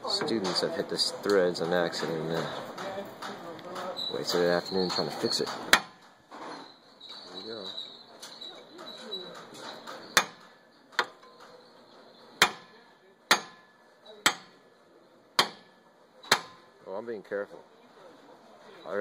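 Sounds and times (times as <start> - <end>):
hammer striking steel: 3.2 - 6.2, 9.3 - 11.6, 12.4 - 14.7, 15.4 - 16.8.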